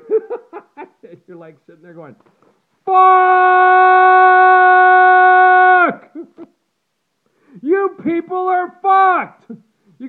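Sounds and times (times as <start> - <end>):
man yelling loudly: 2.9 - 6.1, 7.6 - 9.5.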